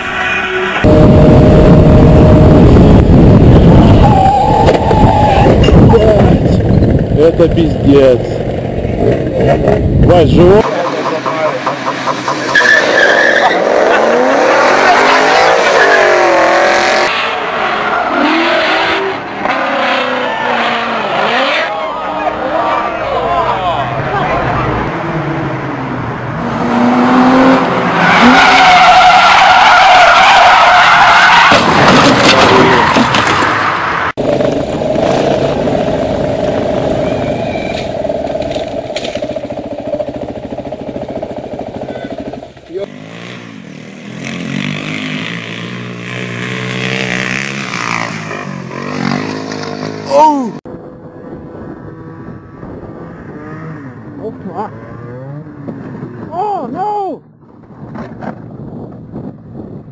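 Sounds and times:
car engines revving: 0.0 - 56.5.

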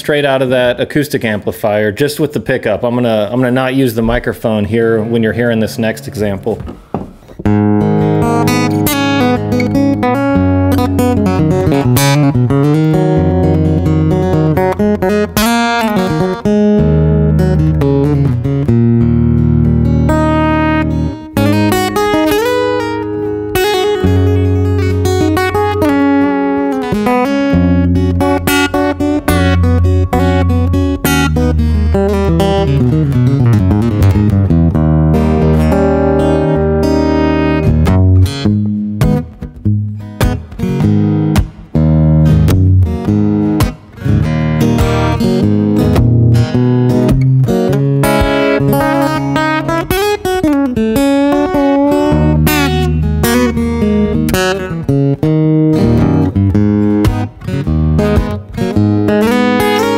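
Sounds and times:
fingerstyle acoustic guitar: 4.0 - 59.9.

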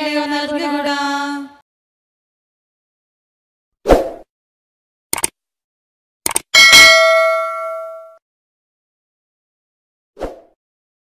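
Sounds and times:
double mouse click effect: 6.3 - 6.5
bright bell ding: 6.6 - 8.2.

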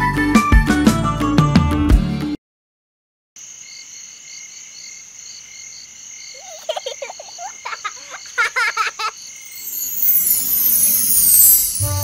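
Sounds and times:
insects chirping: 3.4 - 12.0.

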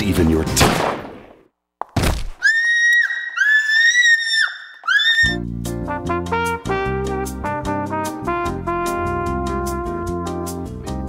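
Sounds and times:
woman screaming: 2.4 - 5.4.

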